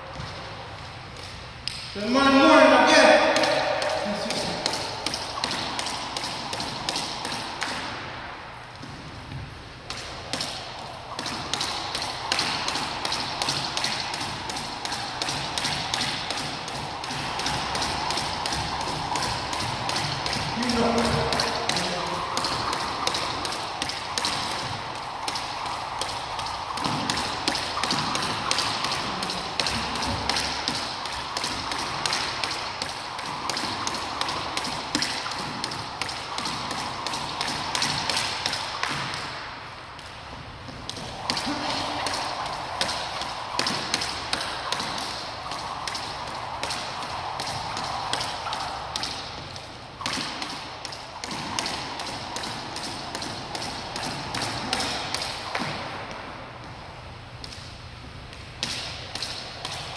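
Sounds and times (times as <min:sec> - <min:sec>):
skipping rope tapping hardwood floor: 0:00.0 - 0:02.0, 0:02.8 - 0:59.9
rope swishing through air: 0:03.0 - 0:59.9.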